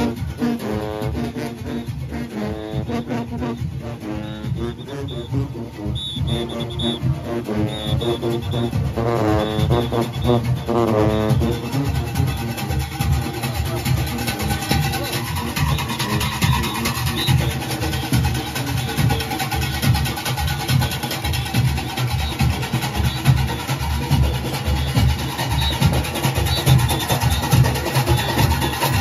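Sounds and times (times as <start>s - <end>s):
brass horn chord: 0.0s - 12.6s
drums and cowbells rhythm: 0.0s - 29.0s.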